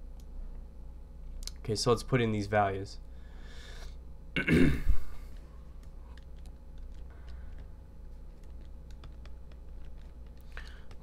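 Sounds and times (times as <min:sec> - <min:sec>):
man clearing his throat: 0:04.4 - 0:05.2.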